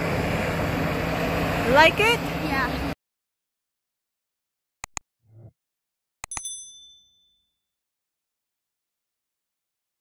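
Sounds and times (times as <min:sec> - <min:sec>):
bright bell-like ding: 0:06.3 - 0:07.6.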